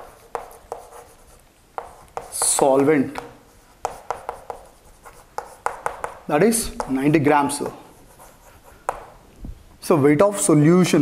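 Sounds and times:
chalk tapping on chalkboard: 0.0s - 9.2s.

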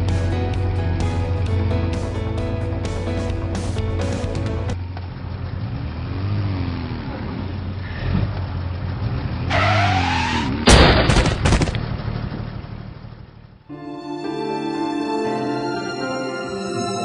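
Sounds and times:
car driving: 0.0s - 14.9s
tyres screeching: 9.5s - 10.8s
loud car crash: 9.5s - 12.4s.

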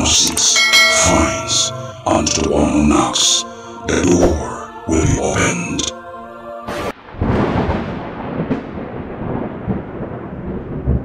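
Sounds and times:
sharp thunder crack: 6.7s - 11.0s
thunder rumbling: 6.9s - 11.0s.

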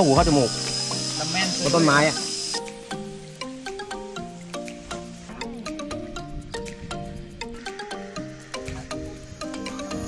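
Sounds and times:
high-pitched insect drone: 0.0s - 10.0s.

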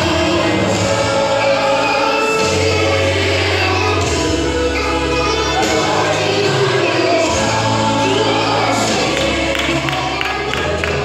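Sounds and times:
bass line: 0.0s - 11.0s
gospel choir singing: 0.0s - 11.0s.

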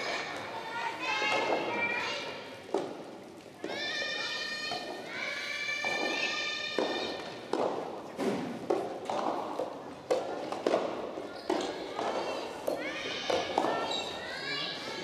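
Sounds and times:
high-pitched shouts in a hall: 0.0s - 2.6s, 3.6s - 7.4s, 11.5s - 15.0s
tennis ball bouncing on wood: 6.8s - 8.0s.

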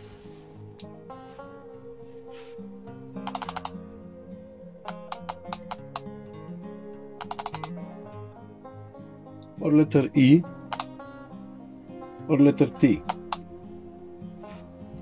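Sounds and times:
soft acoustic guitar music: 0.0s - 15.0s
push-button clicking: 3.3s - 3.8s, 7.2s - 7.8s, 10.7s - 10.9s.

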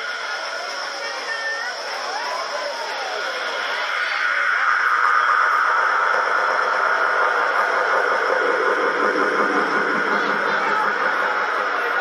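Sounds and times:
hissing noise wash: 0.0s - 12.0s
faint held synth tones: 0.1s - 12.0s.

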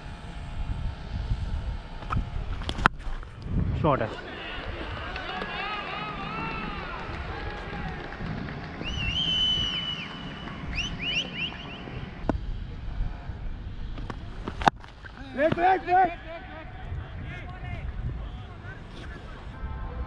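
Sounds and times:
distant voices shouting: 4.0s - 12.2s, 15.2s - 20.0s.

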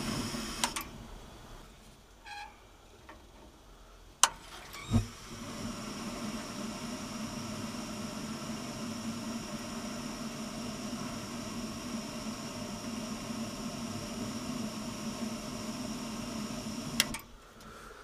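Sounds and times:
boiler burner rushing hum: 0.0s - 1.6s, 4.8s - 17.3s.

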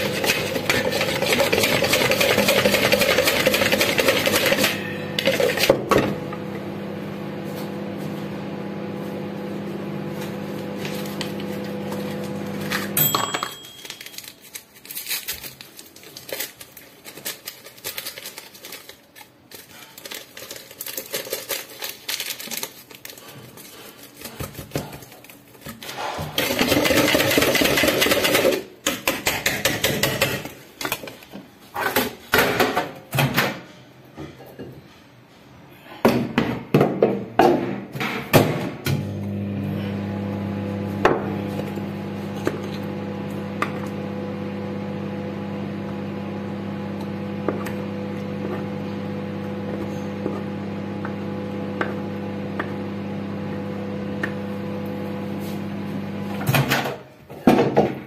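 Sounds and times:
whisk beating in plastic bowl: 0.0s - 5.7s, 26.4s - 30.5s.

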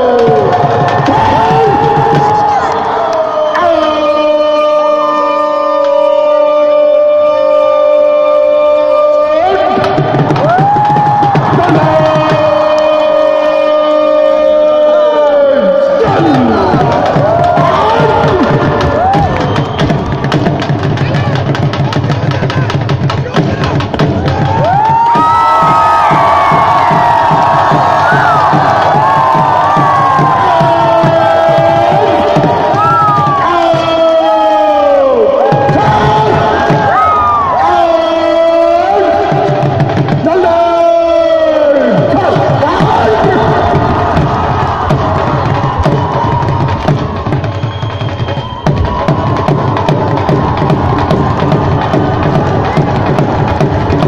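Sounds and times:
many voices shouting: 0.0s - 5.9s, 9.3s - 19.5s, 24.2s - 47.5s
long held crowd calls: 0.0s - 54.0s
stadium crowd cheering and chanting: 0.0s - 54.0s.

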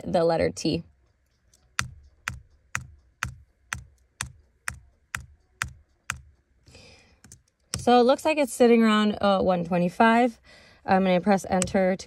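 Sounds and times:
instrumental track with kick drum: 1.7s - 6.4s
keyboard key taps: 1.8s - 6.3s, 11.6s - 11.8s.

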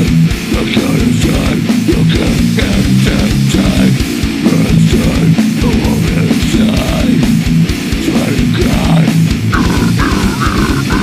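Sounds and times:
death metal track: 0.0s - 11.0s.

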